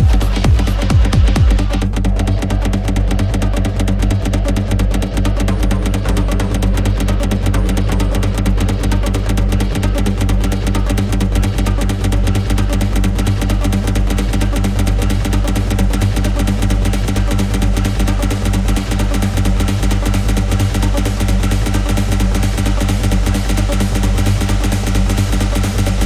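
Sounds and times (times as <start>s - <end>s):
hard industrial techno: 0.0s - 26.0s.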